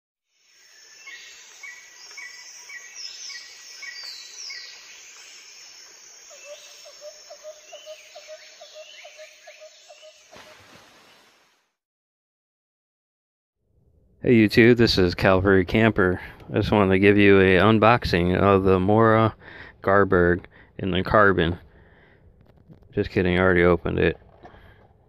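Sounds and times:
steady outdoor hiss: 0:00.4 - 0:10.2
low repeated bird chirps: 0:00.7 - 0:10.4.

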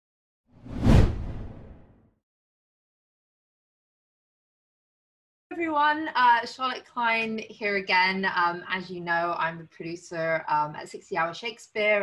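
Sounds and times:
whoosh: 0:00.6 - 0:01.9
low rumble: 0:00.7 - 0:01.8.

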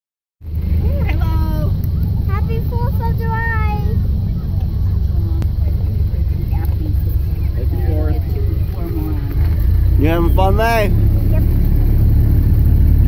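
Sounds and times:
car engine rumble from inside: 0:00.4 - 0:13.0
faint voices: 0:00.6 - 0:12.0.

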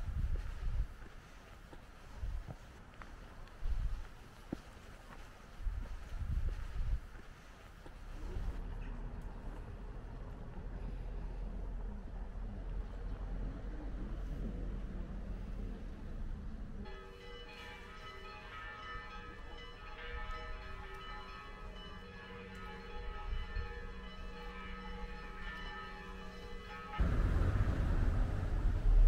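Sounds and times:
church bells ringing: 0:16.9 - 0:27.5
loud rushing rumble: 0:27.0 - 0:29.0.

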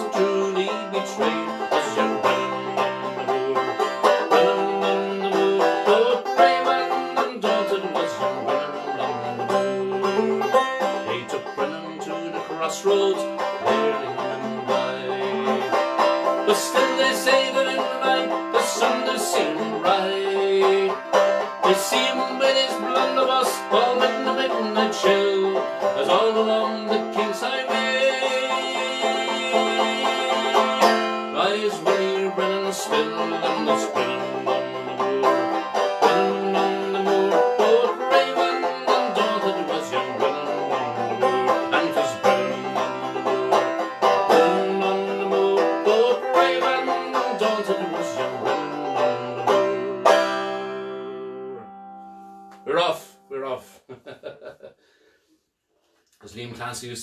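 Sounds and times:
man singing: 0:00.0 - 0:51.6
banjo playing: 0:00.0 - 0:55.0.

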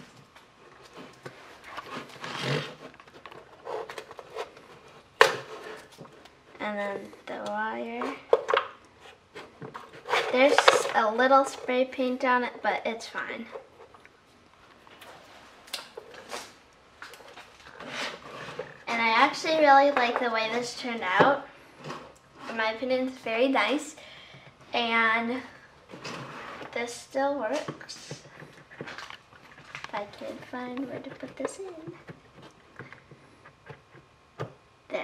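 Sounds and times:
handling rustles and soft knocks: 0:00.0 - 0:12.1
masking tape tearing off wood: 0:01.7 - 0:04.6.

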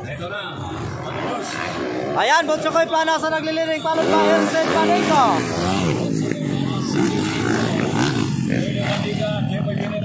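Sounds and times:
motocross bike engines revving: 0:00.0 - 0:10.0.

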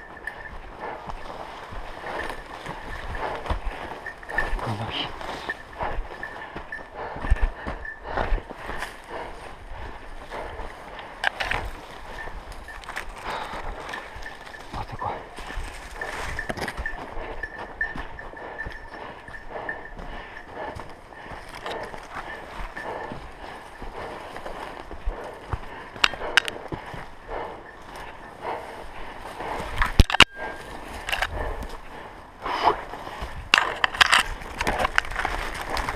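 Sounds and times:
twigs cracking: 0:10.3 - 0:16.8, 0:33.0 - 0:35.9
footsteps through dry leaves: 0:11.7 - 0:16.4.

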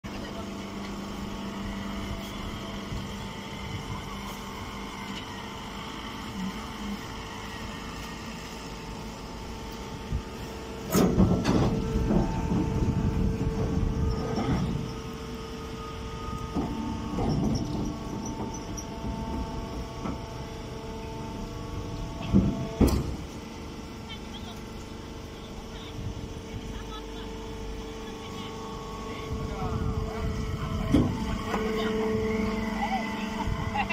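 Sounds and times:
baler motor humming: 0:00.1 - 0:33.9.

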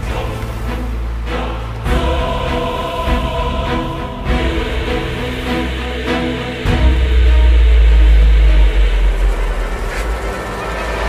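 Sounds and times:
deep loud rumble: 0:00.0 - 0:11.0
film music: 0:00.0 - 0:11.0.

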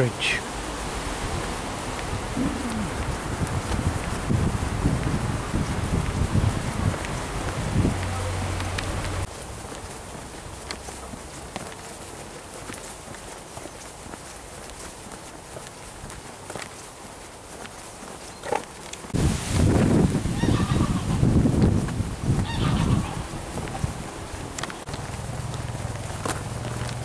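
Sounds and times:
geese honking: 0:20.3 - 0:21.3, 0:22.4 - 0:23.4.

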